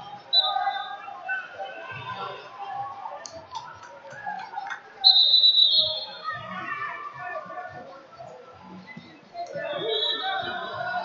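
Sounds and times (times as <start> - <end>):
referee's whistle blown: 0.3 - 1.1, 5.0 - 6.4, 9.6 - 10.7.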